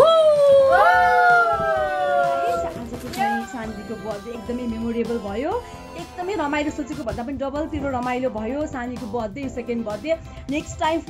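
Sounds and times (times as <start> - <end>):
howl-like voiced cries: 0.0 - 4.3.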